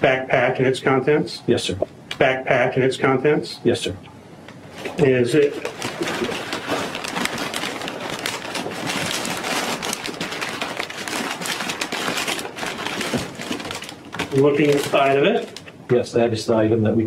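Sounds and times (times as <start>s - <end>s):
paper bag crinkling: 4.7s - 15.7s.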